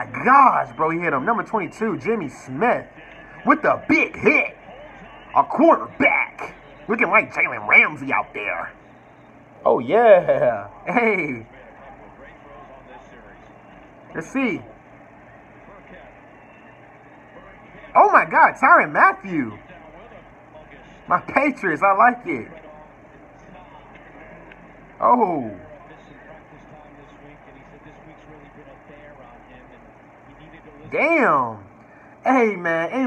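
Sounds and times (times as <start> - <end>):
commentator's voice: 0.0 - 8.8, 9.7 - 13.2, 14.1 - 14.7, 17.4 - 24.0, 25.0 - 33.0
faint football broadcast speech: 0.0 - 33.0.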